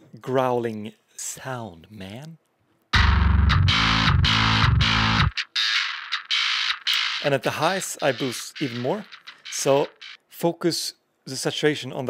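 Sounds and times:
distorted bass riff chugs: 0:03.0 - 0:10.2.

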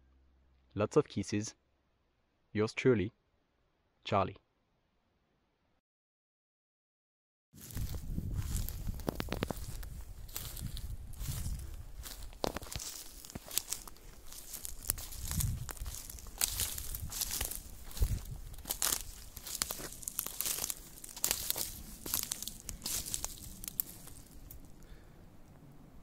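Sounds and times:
dry twigs crackling and snapping: 0:07.6 - 0:25.0.

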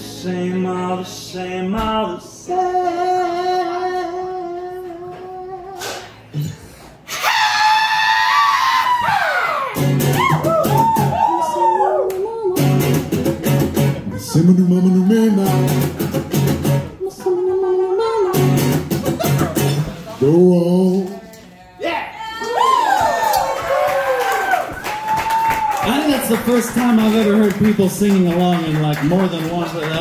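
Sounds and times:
person singing high wail: 0:07.1 - 0:12.8
strummed acoustic guitar: 0:12.6 - 0:21.0.

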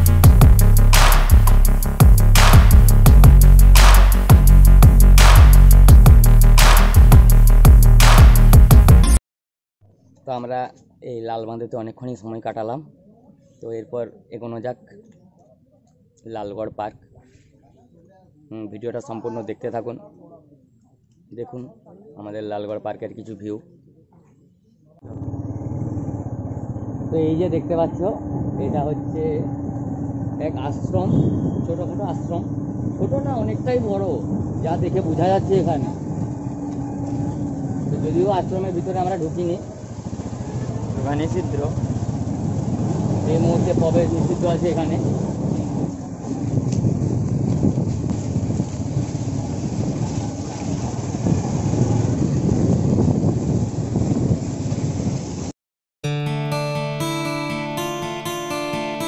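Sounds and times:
vehicle engine running: 0:00.0 - 0:08.9, 0:25.1 - 0:52.1
wind buffeting microphone: 0:25.1 - 0:55.5.

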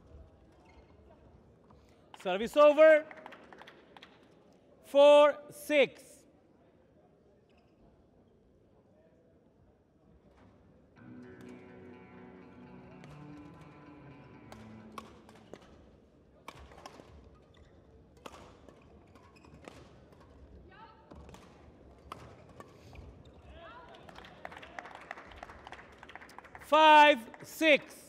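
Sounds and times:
faint music: 0:11.0 - 0:16.9
rackets striking shuttlecock: 0:14.3 - 0:15.8, 0:16.4 - 0:17.2, 0:18.2 - 0:20.4.

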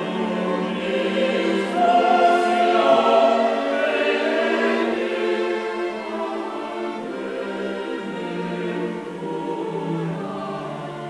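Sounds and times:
mixed choir singing: 0:00.0 - 0:11.0
string orchestra: 0:00.0 - 0:11.0.

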